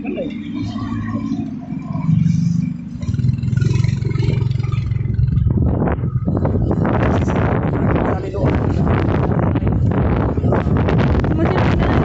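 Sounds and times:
motorcycle engine running: 0.0s - 12.0s
wind buffeting microphone: 0.2s - 12.0s.

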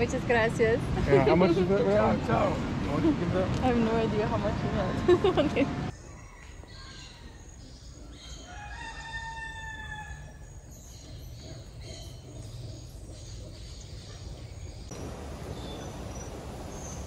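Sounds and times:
rooster crowing: 8.5s - 10.4s
faint bird chirping: 10.1s - 17.0s.

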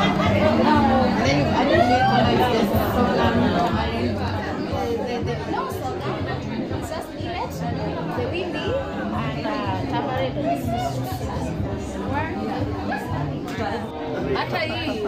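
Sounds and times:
background music: 0.0s - 15.0s
people chatting: 0.0s - 15.0s.

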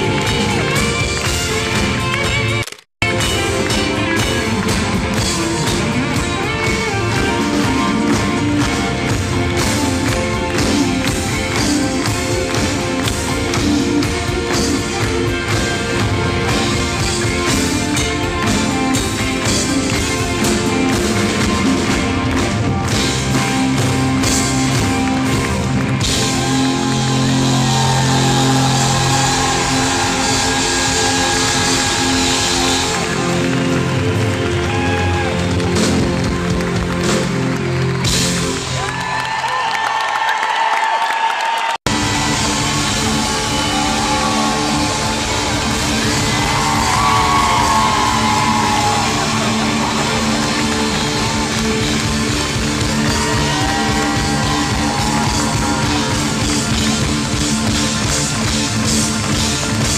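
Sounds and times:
crowd cheering and whooping: 0.0s - 2.3s, 24.7s - 59.9s
live rock band playing: 0.0s - 39.3s, 41.9s - 59.9s.

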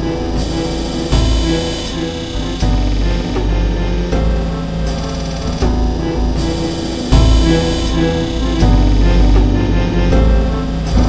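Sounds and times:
electronic trance music: 0.0s - 11.0s.

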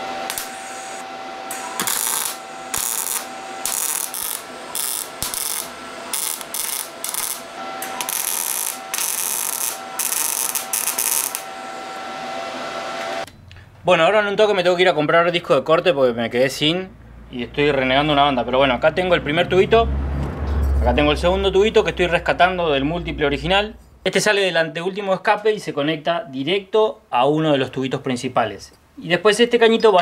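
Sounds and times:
crackling weld bursts: 0.0s - 11.7s
welder sizzle: 0.0s - 13.2s.

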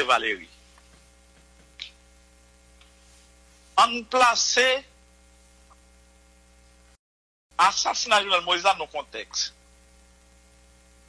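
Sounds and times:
person talking: 0.0s - 0.6s, 3.8s - 4.9s, 7.6s - 9.5s
faint electrical hum: 0.0s - 7.0s, 7.6s - 11.0s.

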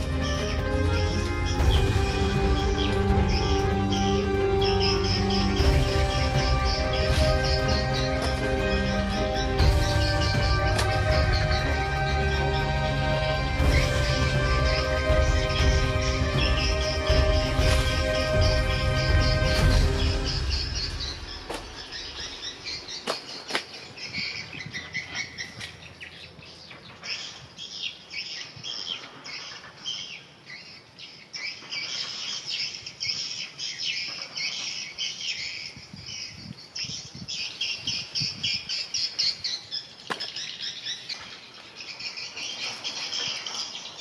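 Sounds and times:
birds chirping: 0.0s - 44.0s
rustling of leaves: 0.0s - 44.0s.

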